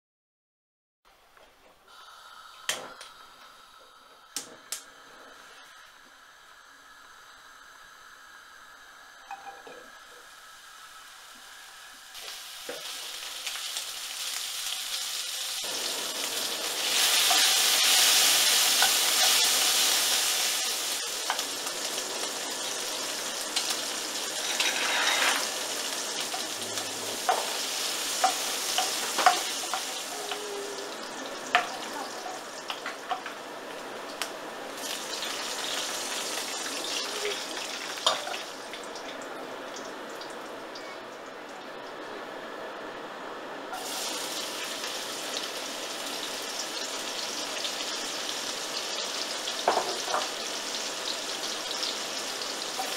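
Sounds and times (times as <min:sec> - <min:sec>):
meat sizzling in a pan: 0:01.9 - 0:39.2, 0:43.7 - 0:52.9
wooden spatula scraping a pan: 0:24.4 - 0:25.6.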